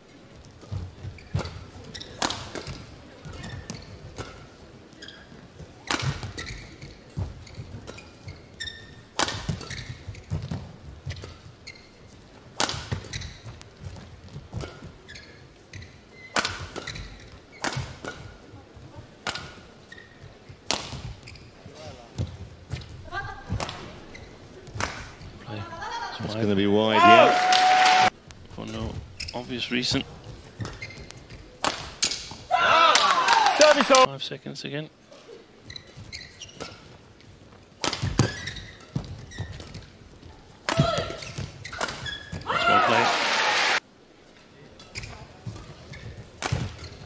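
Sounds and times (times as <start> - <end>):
rackets hitting shuttlecock: 0.6 - 4.5, 5.8 - 8.0, 9.1 - 11.4, 12.6 - 13.6, 16.3 - 18.5, 20.6 - 21.1, 23.5 - 23.9, 24.7 - 25.3, 30.6 - 34.1, 37.8 - 39.9, 40.6 - 42.5, 46.4 - 47.0.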